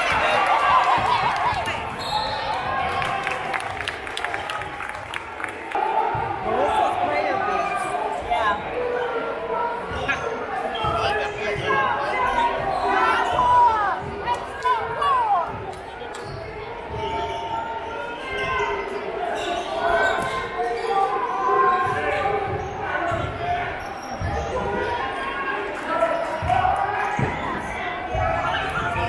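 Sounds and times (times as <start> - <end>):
crowd of spectators talking: 0.0 - 29.0.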